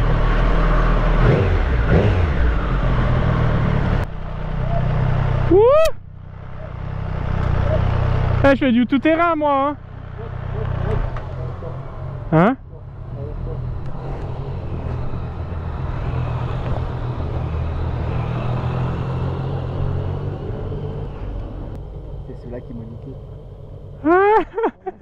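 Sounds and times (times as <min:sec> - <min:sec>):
motorcycles passing slowly: 0:00.0 - 0:25.0.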